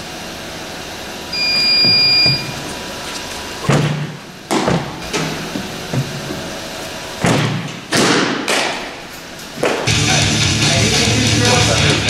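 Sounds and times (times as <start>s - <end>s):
baseballs smacking into mitts: 3.7s - 6.1s, 7.2s - 9.9s.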